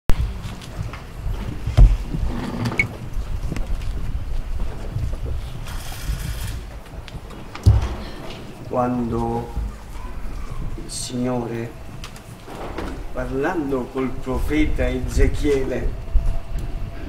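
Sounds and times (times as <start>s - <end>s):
wind buffeting microphone: 0.1s - 17.0s.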